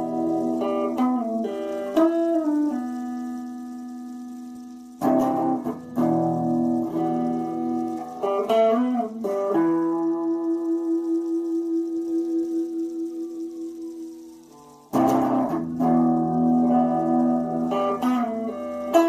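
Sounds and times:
electric guitar sustained notes: 0:00.0 - 0:19.0.

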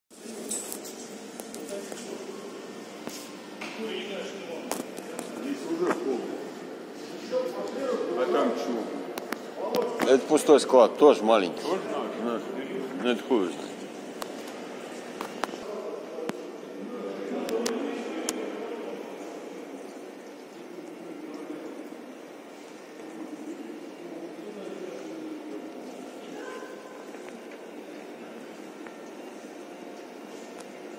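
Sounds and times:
faint muffled voices: 0:00.1 - 0:30.9
room noise: 0:00.1 - 0:30.9.

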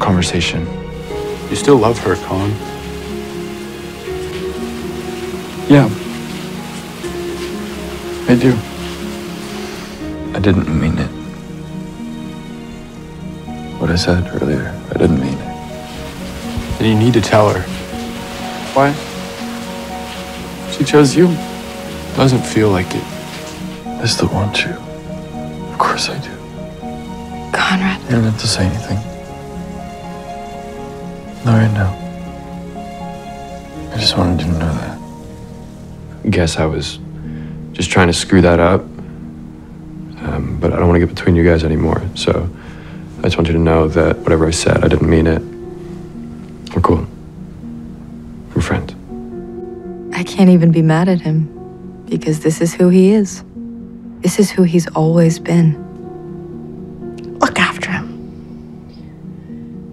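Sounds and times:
quiet music of held notes: 0:00.0 - 0:59.9
steady hiss like rain: 0:00.0 - 0:59.9.

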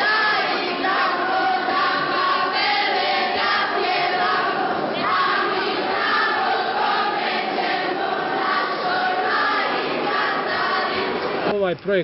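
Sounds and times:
children singing in unison: 0:00.0 - 0:11.5.

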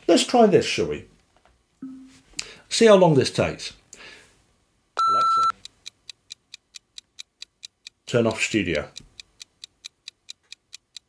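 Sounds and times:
stopwatch ticking: 0:05.4 - 0:11.0.

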